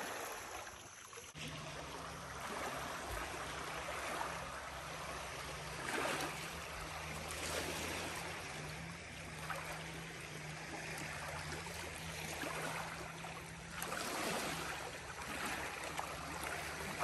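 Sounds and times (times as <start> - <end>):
river waves lapping shoreline: 0.0 - 17.0.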